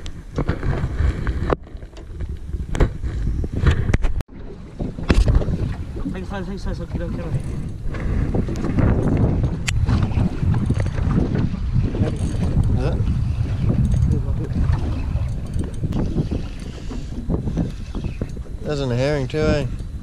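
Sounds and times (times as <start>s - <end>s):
water against boat hull: 0.0s - 20.0s
wind buffeting microphone: 0.0s - 20.0s.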